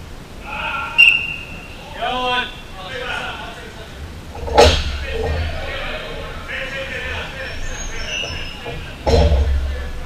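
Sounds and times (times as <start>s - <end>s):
players shouting: 0.3s - 10.0s.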